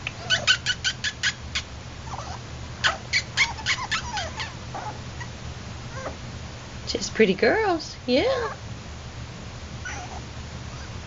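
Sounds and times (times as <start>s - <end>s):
puppy yipping: 0.1s - 5.3s, 5.9s - 6.2s, 9.8s - 11.0s.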